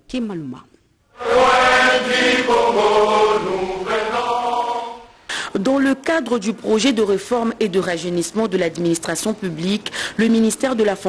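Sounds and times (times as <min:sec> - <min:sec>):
choir singing long held notes: 0:01.1 - 0:05.2.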